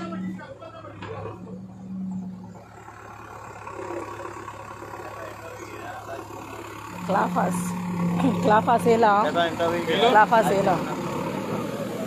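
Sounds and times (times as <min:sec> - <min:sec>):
diesel engine droning: 0:00.0 - 0:12.0.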